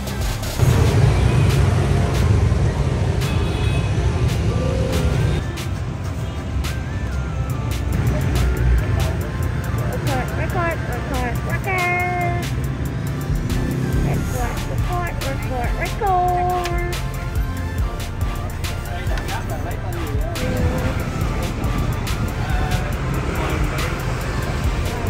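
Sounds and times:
background music: 0.0 - 25.0
motorbike engines rumbling: 0.0 - 25.0
street traffic: 0.0 - 25.0.

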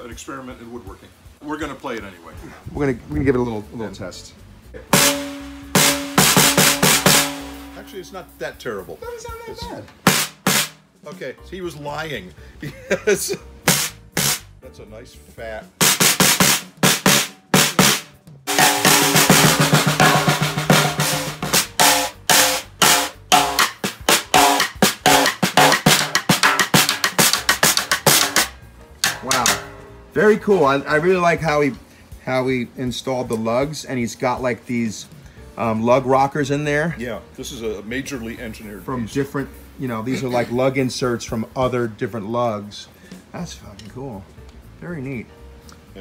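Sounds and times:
snare drum hits with drumstick: 4.9 - 8.0, 10.0 - 10.8, 13.7 - 14.4, 15.8 - 29.8.

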